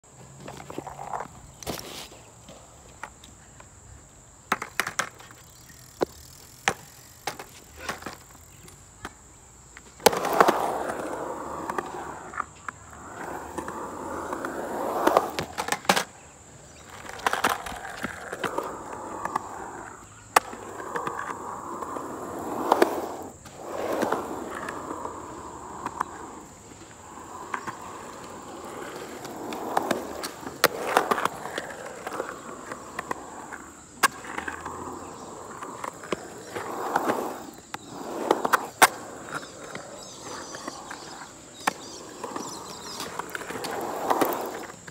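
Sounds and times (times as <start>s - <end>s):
skateboard wheel roar: 0.1s - 44.9s
skateboard clacks: 0.3s - 44.9s.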